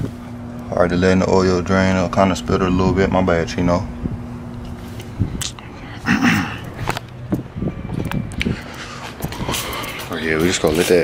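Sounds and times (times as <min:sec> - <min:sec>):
man clearing throat: 0:06.0 - 0:06.7.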